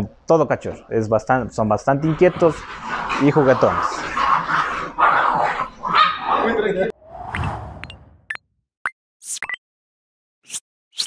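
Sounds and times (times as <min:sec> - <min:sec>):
puppies yapping and whining: 0:02.0 - 0:06.4.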